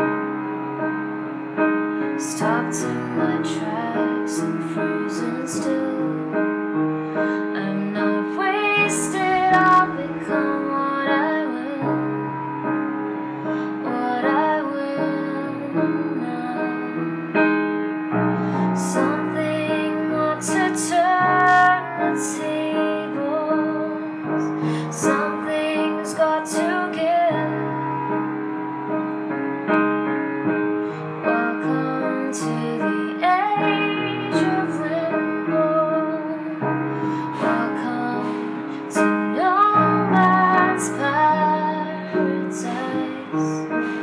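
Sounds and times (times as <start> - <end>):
piano chords: 0.0 - 44.0
woman singing: 2.2 - 12.4, 13.6 - 17.1, 18.5 - 28.0, 31.2 - 44.0.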